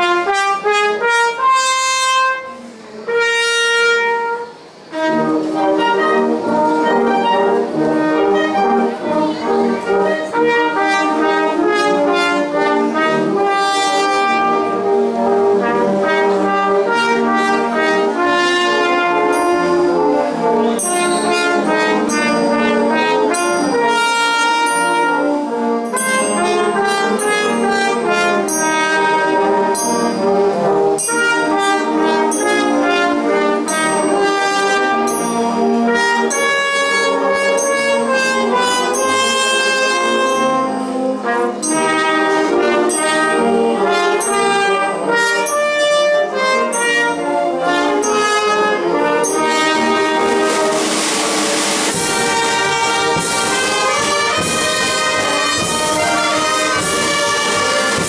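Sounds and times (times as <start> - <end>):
brass band playing: 0.0 - 58.0.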